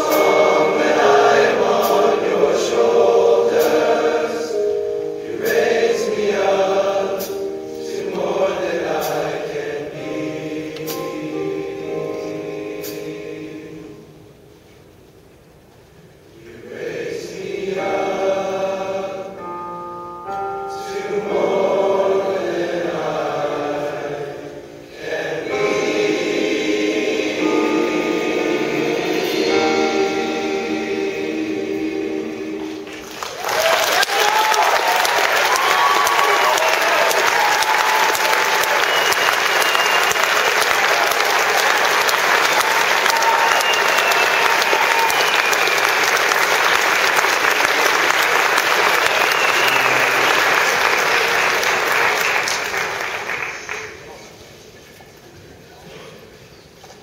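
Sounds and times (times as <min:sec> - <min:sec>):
male choir holding a chord: 0:00.0 - 0:14.4, 0:16.3 - 0:33.3, 0:38.0 - 0:52.6
audience applause: 0:32.8 - 0:54.3
cheering and whistling: 0:33.2 - 0:52.5.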